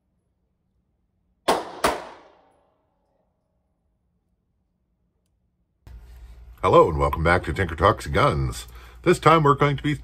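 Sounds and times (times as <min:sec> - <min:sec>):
revolver shots echoing indoors: 0:00.1 - 0:05.8.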